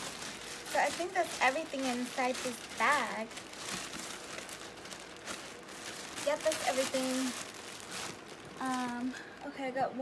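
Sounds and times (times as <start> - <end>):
plastic bag rustling: 0.0 - 9.6.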